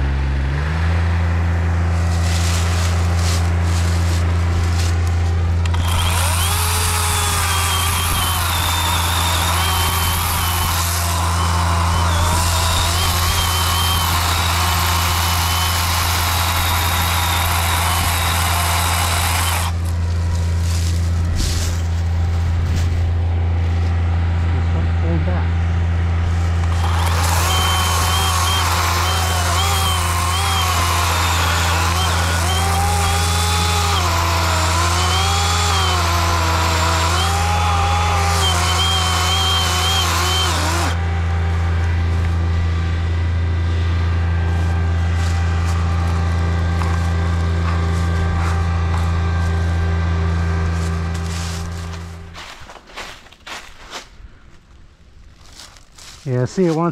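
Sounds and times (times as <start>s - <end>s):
tractor diesel engine droning: 0.0s - 53.6s
chainsaw cutting wood: 1.8s - 21.7s, 26.4s - 42.5s, 44.5s - 53.1s.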